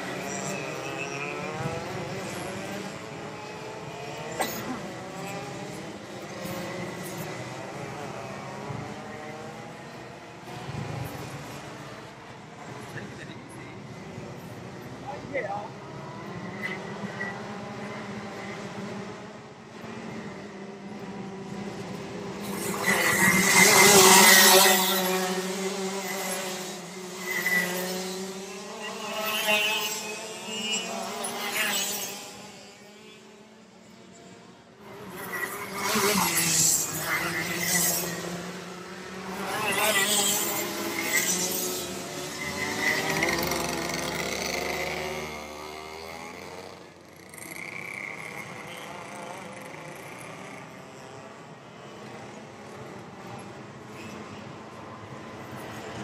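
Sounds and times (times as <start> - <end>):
kart engines revving: 0.0 - 56.0.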